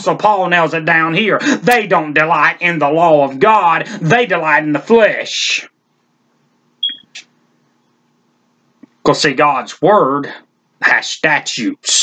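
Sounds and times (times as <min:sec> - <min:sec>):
faint steady hum: 0:00.0 - 0:12.0
short high-pitched beep: 0:06.8 - 0:07.2.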